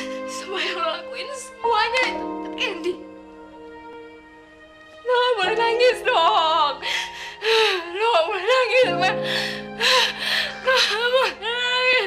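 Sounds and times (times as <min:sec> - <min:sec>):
woman crying and sobbing: 0:00.0 - 0:03.2, 0:05.1 - 0:12.0
soft background music: 0:00.0 - 0:12.0.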